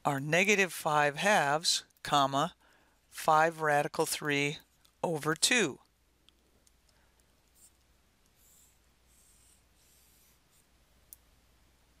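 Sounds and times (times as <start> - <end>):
stylus scratching on tablet: 7.5 - 10.8.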